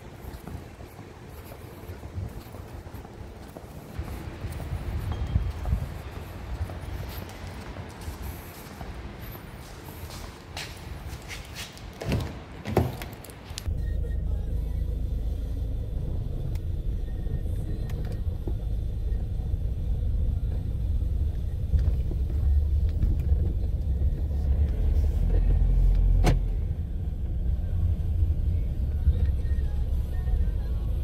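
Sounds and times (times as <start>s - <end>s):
low steady rumble: 13.6s - 31.0s.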